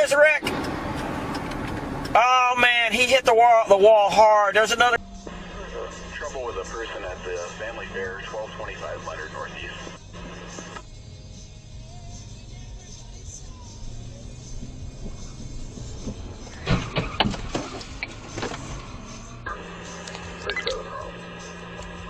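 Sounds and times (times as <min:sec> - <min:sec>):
car cabin rumble: 0:00.0 - 0:10.9, 0:11.9 - 0:22.0
faint dispatch radio voices: 0:04.4 - 0:10.8, 0:19.5 - 0:22.0
sharp knocks and thuds: 0:16.0 - 0:18.7.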